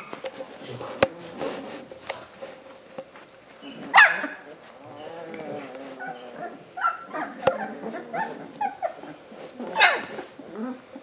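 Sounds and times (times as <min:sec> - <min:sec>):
puppy drawn-out cry: 0:03.9 - 0:10.6
puppies yelping and yipping: 0:05.8 - 0:10.2.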